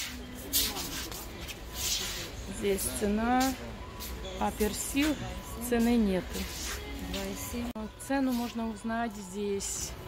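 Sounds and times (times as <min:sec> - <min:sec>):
faint low speech: 0:00.0 - 0:07.9.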